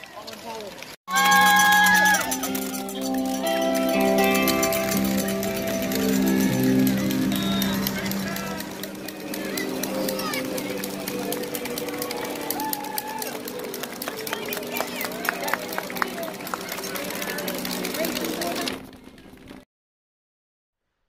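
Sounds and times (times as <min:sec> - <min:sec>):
running footsteps: 0:00.0 - 0:19.6
spectators' voices: 0:00.0 - 0:19.6
live band music: 0:01.1 - 0:11.4.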